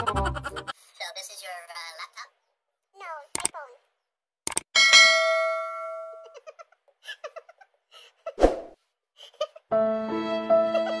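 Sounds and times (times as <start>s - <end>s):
sharp clicks: 3.3s - 3.6s, 4.4s - 4.7s
bell-like ding: 4.8s - 6.2s
quick downward-sliding sound: 8.4s - 8.8s.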